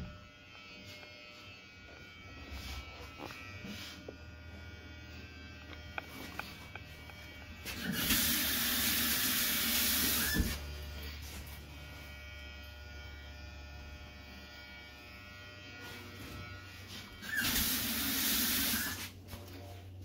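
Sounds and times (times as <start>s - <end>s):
hair dryer blowing: 7.8s - 10.7s, 17.2s - 19.1s.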